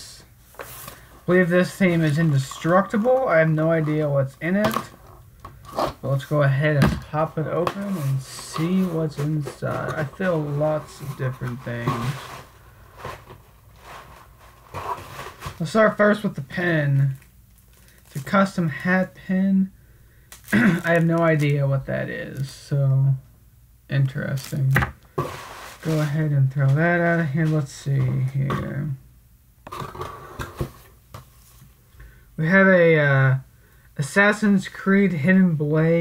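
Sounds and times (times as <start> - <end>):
hands rummaging through items: 7.5 - 15.8, 16.5 - 18.4.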